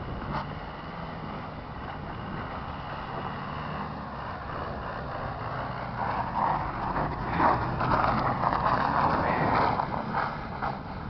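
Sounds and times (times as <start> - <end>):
truck engine running: 0.0 - 11.0.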